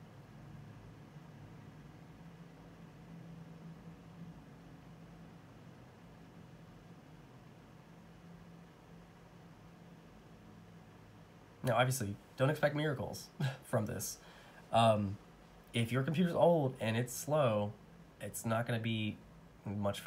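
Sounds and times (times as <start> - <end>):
low hum: 0.0 - 20.0
soft hiss: 0.0 - 20.0.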